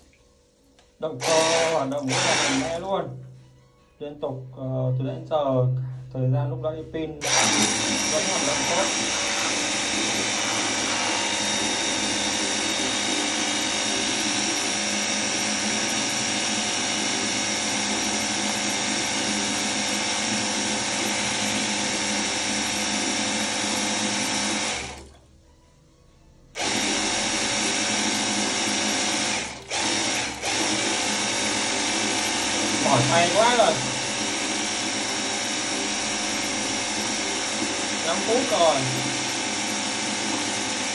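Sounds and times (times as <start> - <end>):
pressure washer pump motor: 1.0 - 2.9, 7.2 - 25.3, 26.6 - 40.9
water jet spraying into bucket: 1.2 - 2.9, 7.2 - 25.1, 26.6 - 40.9.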